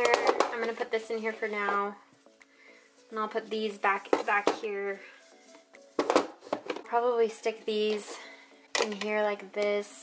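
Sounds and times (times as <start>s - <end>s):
woman speaking: 0.0s - 2.0s, 3.1s - 5.1s, 6.9s - 10.0s
soft background music: 0.0s - 10.0s.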